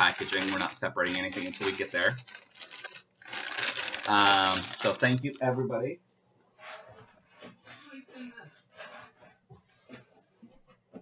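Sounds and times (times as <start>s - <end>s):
packaging rustling and crinkling: 0.0s - 5.6s.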